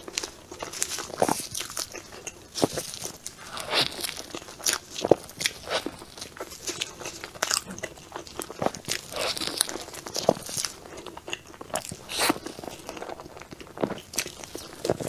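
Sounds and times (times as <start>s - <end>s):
biting and chewing cake: 0.0s - 15.0s.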